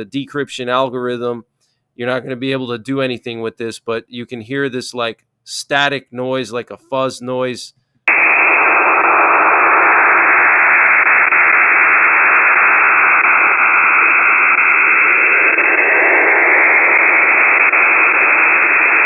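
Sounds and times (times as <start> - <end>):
radio static fuzz: 8.1 - 19.0.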